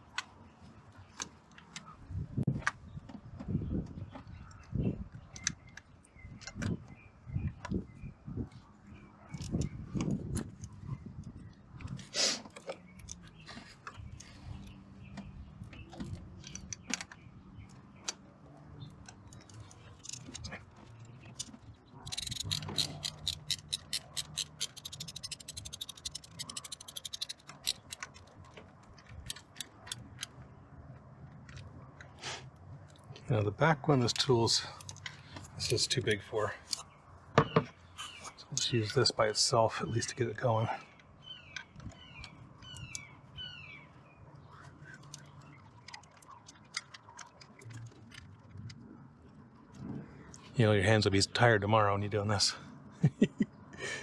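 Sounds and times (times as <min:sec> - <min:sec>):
tools knocking and scraping: 0:19.3 - 0:30.4, 0:36.7 - 0:37.8
ratchet clicking fast: 0:22.1 - 0:28.0.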